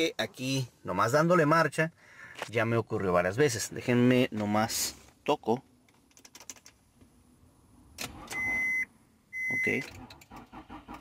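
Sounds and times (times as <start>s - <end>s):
key clicking in ignition: 5.9s - 6.8s.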